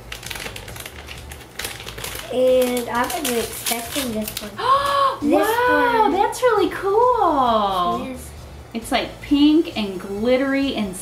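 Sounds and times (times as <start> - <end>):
toy wrapper crinkling: 0.0 - 5.0.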